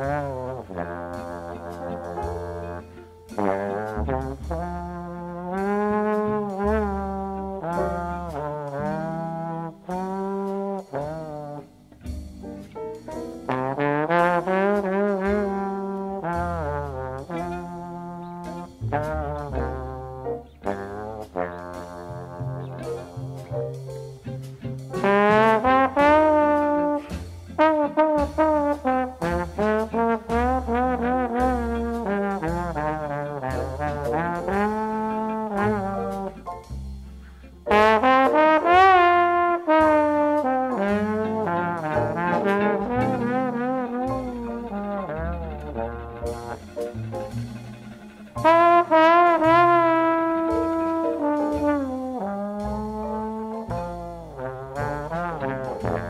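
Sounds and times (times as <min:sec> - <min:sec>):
bass line: 0:00.0 - 0:56.0
trombone solo: 0:00.0 - 0:56.0.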